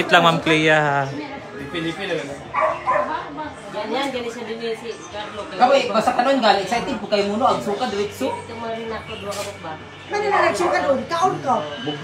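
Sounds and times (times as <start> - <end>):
people talking: 6.8 - 12.0.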